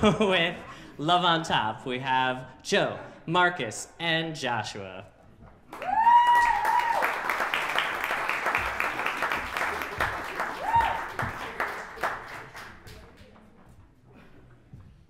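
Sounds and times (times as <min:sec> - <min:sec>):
audience applauding: 0:05.7 - 0:13.2
high whoop: 0:05.8 - 0:07.4, 0:10.5 - 0:11.3.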